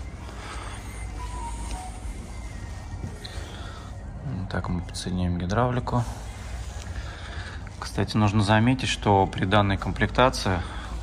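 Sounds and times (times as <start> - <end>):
quiet background music: 0.0 - 11.0
steady low hum: 0.0 - 11.0.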